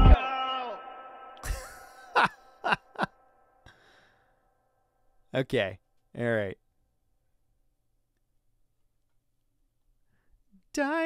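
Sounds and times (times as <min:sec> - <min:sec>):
man laughing: 0:01.4 - 0:03.2
breathy exhale: 0:03.6 - 0:04.4.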